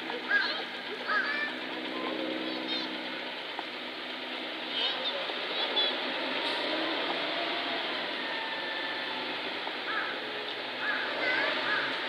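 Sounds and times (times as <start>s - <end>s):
low engine-like hum: 0.0s - 12.0s.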